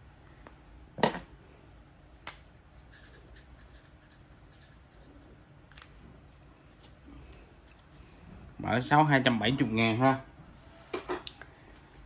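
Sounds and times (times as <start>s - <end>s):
felt-tip marker scratching: 2.9s - 5.2s.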